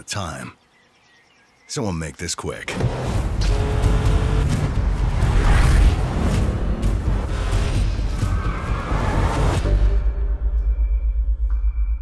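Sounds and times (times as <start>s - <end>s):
whooshes: 5.0s - 6.5s.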